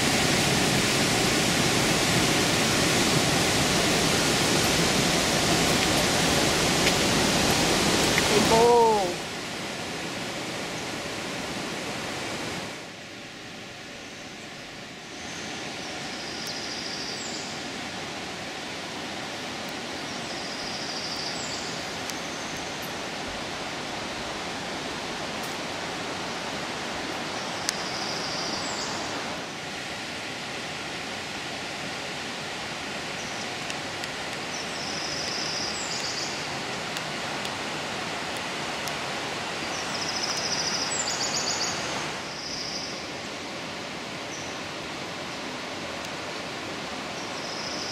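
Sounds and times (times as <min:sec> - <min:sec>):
white water rushing: 0:00.0 - 0:47.9.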